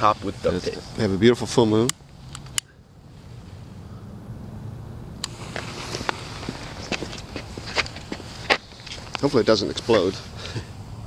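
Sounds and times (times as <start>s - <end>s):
smoke grenade hissing: 5.2s - 6.8s
sharp crackles and pops: 5.2s - 9.9s.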